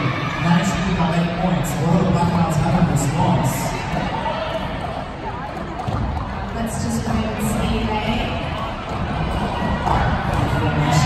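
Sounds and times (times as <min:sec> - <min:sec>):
chatter of many voices: 0:00.0 - 0:11.0.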